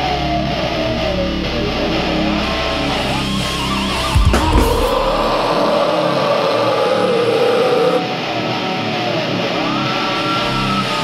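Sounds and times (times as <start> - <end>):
distorted electric guitar notes: 0.0 - 11.0.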